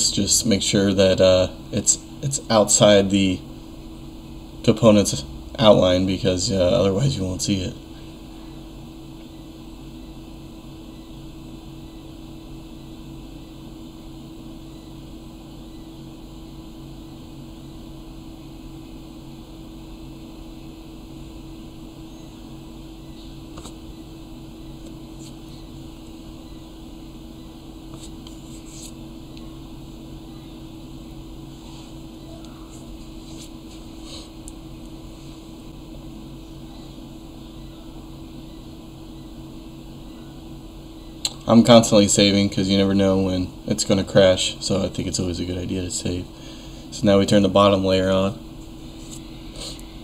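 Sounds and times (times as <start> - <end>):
fan-like drone: 0.0 - 50.0.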